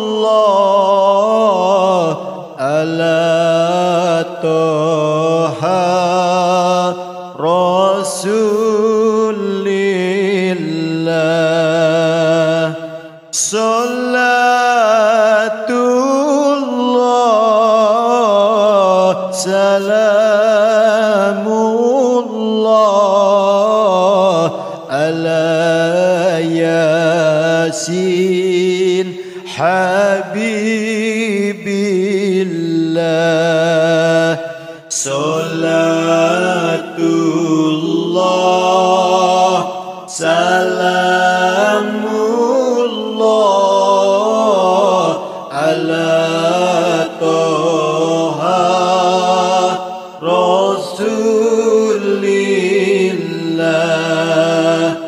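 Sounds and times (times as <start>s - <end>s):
person singing devotional chant: 0.0s - 55.0s
person chanting held notes: 33.1s - 55.0s.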